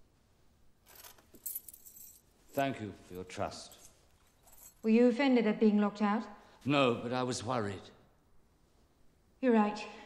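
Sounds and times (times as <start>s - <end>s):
metal keys jangling: 0.8s - 2.3s, 3.6s - 4.9s.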